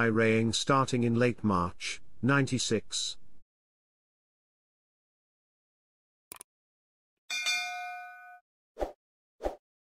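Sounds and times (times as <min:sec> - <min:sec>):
bell-like ding chime: 0:07.3 - 0:08.4.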